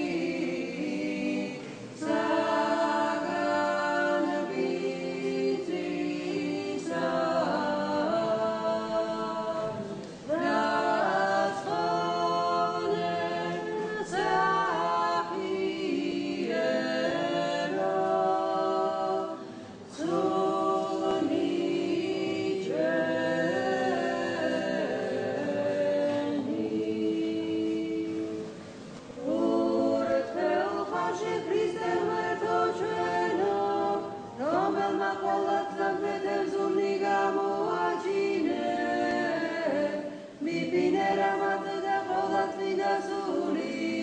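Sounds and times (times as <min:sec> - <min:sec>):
choir singing chant: 0:00.0 - 0:44.0.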